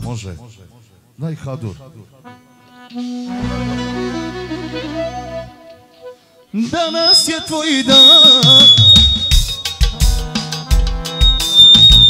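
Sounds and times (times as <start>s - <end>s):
live band playing: 2.7s - 6.2s, 6.9s - 12.0s.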